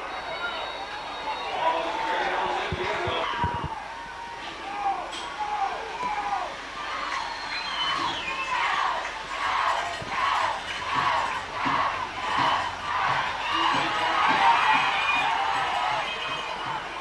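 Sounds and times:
crowd chanting and cheering: 0.0 - 17.0.

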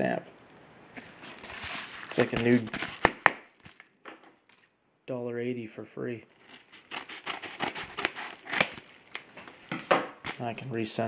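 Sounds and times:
envelope rustling: 1.0 - 4.7, 6.4 - 10.5
padded envelope snapping: 1.0 - 4.7, 6.4 - 9.6, 10.2 - 10.4.

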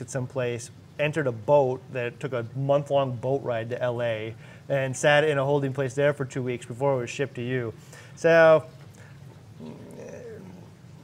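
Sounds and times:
low room hum: 0.0 - 11.0
man humming faintly: 9.6 - 10.8.

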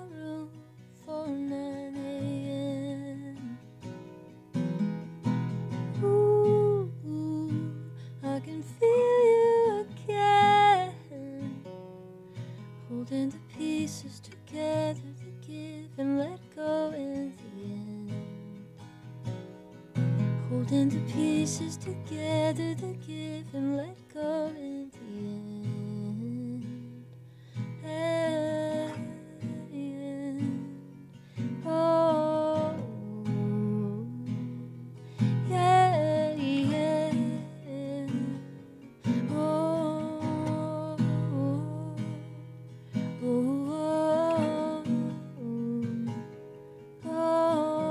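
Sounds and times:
woman singing: 0.0 - 4.0, 5.5 - 11.9, 12.8 - 18.8, 20.2 - 47.9
acoustic guitar: 0.0 - 47.9.

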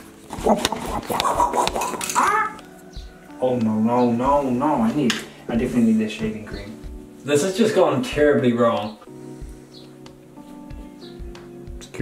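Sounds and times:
person laughing: 0.3 - 2.6.

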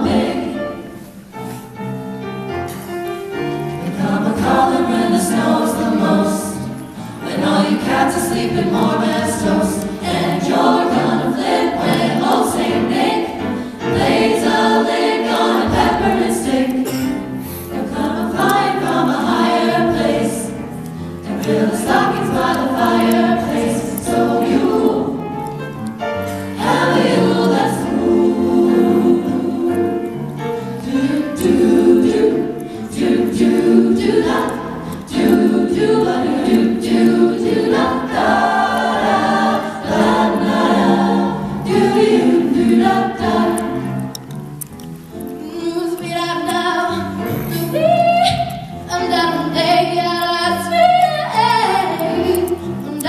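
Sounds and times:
vocal jazz group singing: 0.0 - 1.4, 3.7 - 44.3, 45.4 - 53.0.

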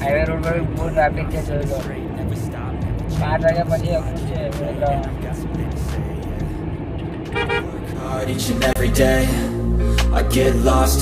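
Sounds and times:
road rumble inside moving car: 0.0 - 11.0
vehicle horn toot: 7.3 - 7.8.

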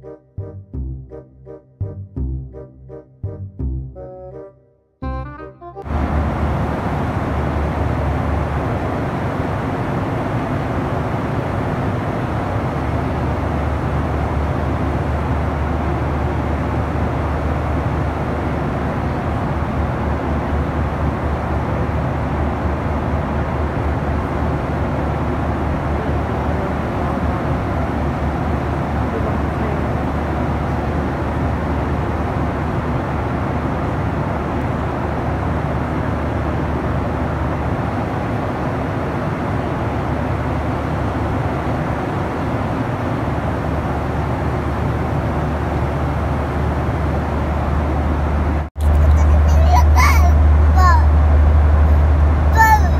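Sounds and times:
jet engine drone in aircraft cabin: 5.8 - 52.9.

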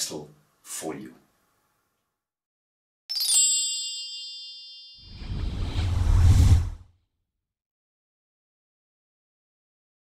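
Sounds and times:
bell-like chime: 3.1 - 5.4
deep whoosh with low rumble: 5.1 - 6.9.

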